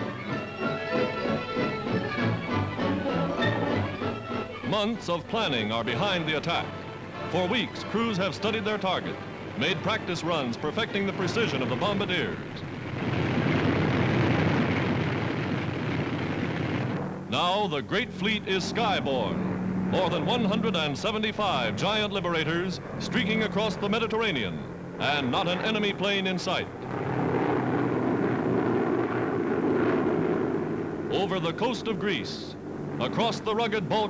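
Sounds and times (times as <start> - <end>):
propeller engines running: 0.0 - 34.0.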